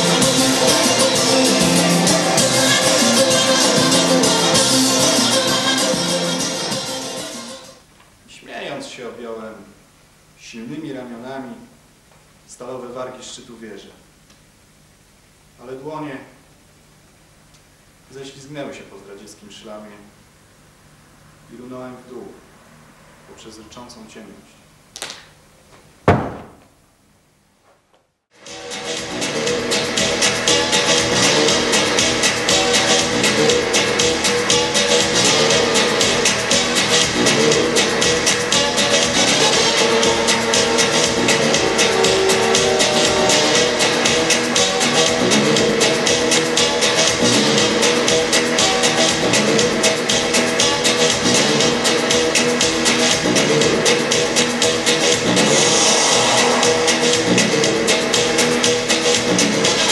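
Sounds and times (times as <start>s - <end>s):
music with steady beat: 0.0s - 7.8s, 28.4s - 59.9s.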